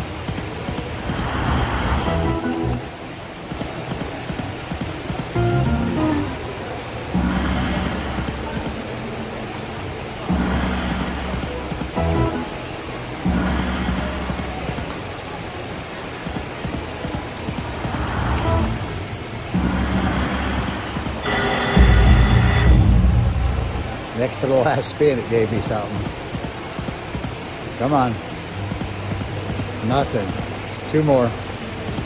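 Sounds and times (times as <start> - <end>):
slot machine reel sounds: 2.0 - 3.2, 5.4 - 6.4, 12.0 - 12.5, 18.5 - 19.6, 21.2 - 23.3
slot machine bonus music: 2.1 - 3.2, 5.4 - 6.4, 12.0 - 12.5, 21.2 - 23.3
high ringing tones: 2.1 - 3.3, 18.5 - 19.6, 21.2 - 24.0.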